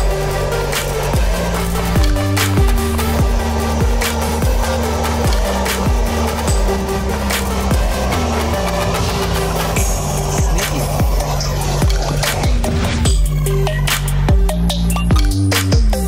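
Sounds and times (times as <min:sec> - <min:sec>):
electronic music with steady beat: 0:00.0 - 0:16.0.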